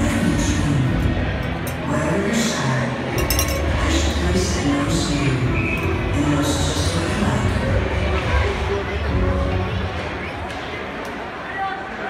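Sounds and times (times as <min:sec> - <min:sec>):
arena music over loudspeakers: 0:00.0 - 0:12.0
crowd noise: 0:00.0 - 0:12.0
sharp clinks: 0:03.2 - 0:03.7.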